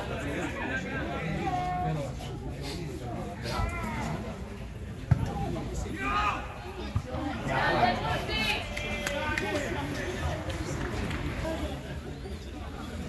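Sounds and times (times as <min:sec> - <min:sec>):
outdoor background noise: 0:00.0 - 0:13.0
spectators shouting and talking: 0:00.0 - 0:13.0.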